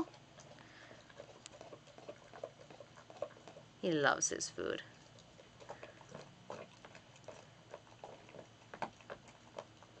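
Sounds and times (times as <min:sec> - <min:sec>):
dog chewing meat and bone: 0:00.0 - 0:10.0.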